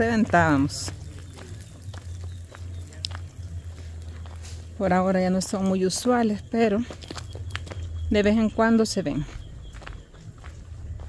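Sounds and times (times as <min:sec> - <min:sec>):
footsteps on stony dirt road: 0:00.0 - 0:11.0.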